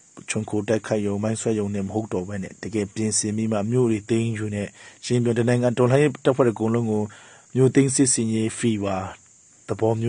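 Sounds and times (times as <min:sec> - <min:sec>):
man speaking: 0:00.2 - 0:10.0.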